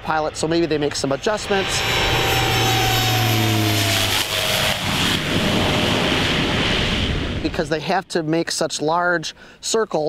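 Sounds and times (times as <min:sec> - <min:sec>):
propeller plane engine drone: 0:00.0 - 0:08.4
steady rushing noise: 0:00.0 - 0:08.9.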